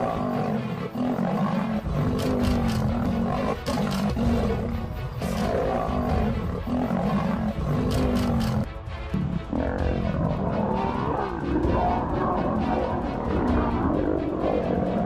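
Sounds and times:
background music: 0:00.0 - 0:15.0
lions snarling and roaring: 0:00.0 - 0:15.0.

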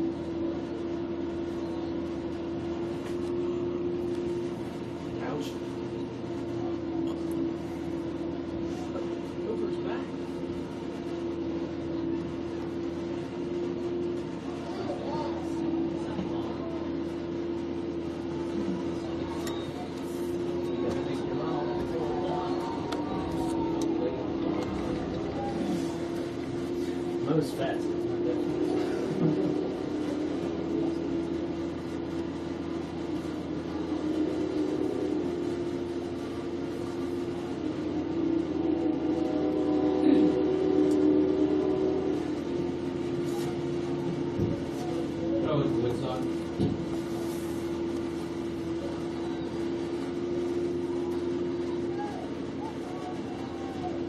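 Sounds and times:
steady drone: 0:00.0 - 0:54.0.

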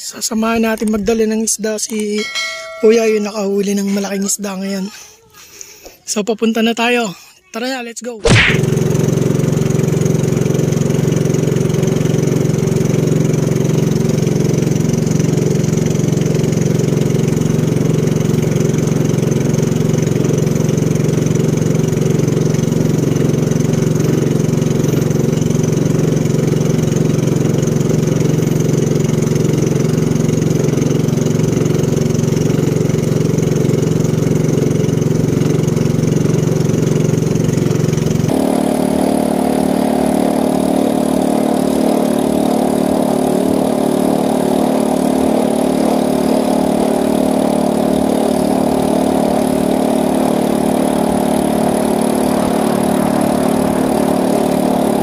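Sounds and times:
boat engine droning: 0:08.3 - 0:55.0.

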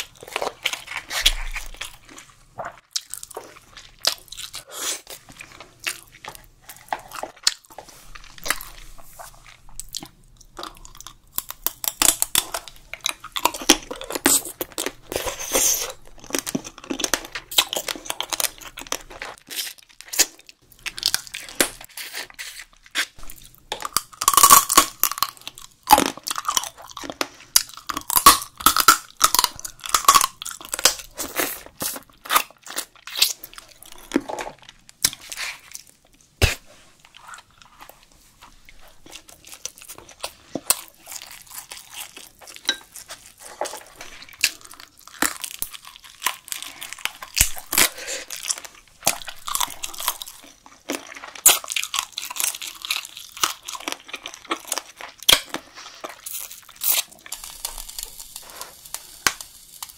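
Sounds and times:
wet chewing and crunching: 0:00.0 - 0:59.9.

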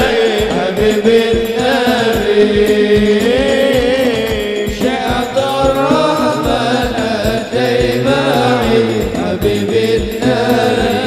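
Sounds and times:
frame drums beating: 0:00.0 - 0:11.0
man singing devotional song: 0:00.0 - 0:11.0.

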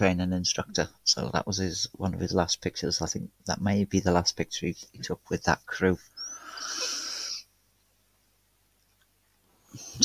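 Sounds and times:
breathy hiss: 0:06.2 - 0:07.5.

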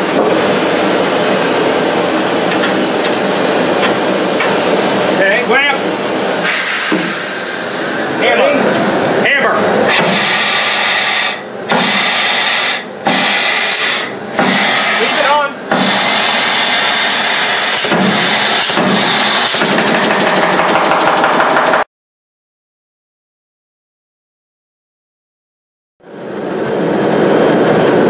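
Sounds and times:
pneumatic riveter running: 0:06.4 - 0:08.5, 0:09.8 - 0:21.8
rapid rattle of riveting blows: 0:13.0 - 0:21.9.

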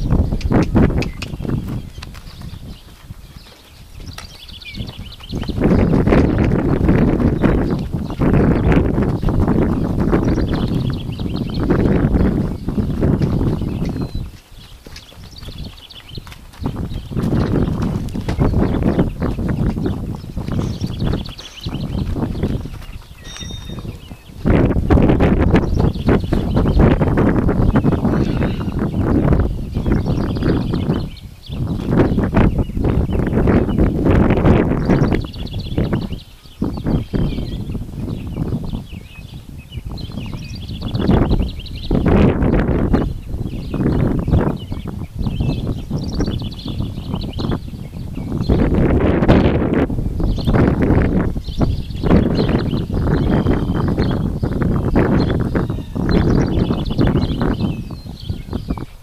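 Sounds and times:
horse hoofbeats on dirt: 0:00.0 - 0:36.2.

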